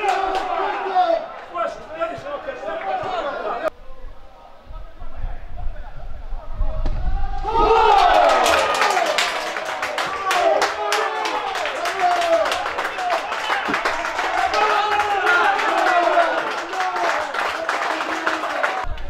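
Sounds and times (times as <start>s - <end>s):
crowd cheering and shouting: 0.0s - 3.7s, 6.5s - 19.0s
clapping: 7.9s - 19.0s.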